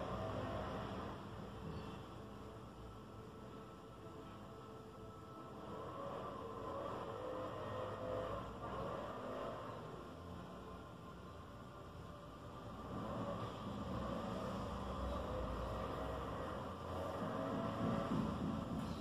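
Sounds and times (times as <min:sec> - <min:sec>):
low rumbling background noise: 0:00.0 - 0:19.0.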